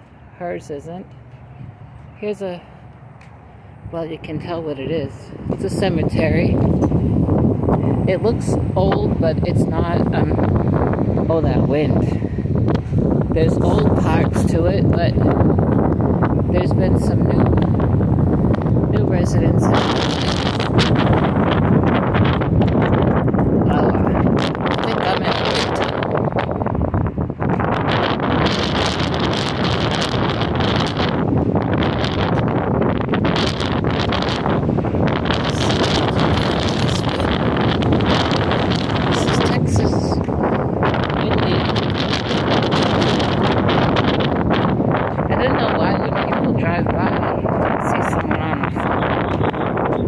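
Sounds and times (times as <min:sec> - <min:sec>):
wind rumble on microphone: 0:00.0 - 0:50.0.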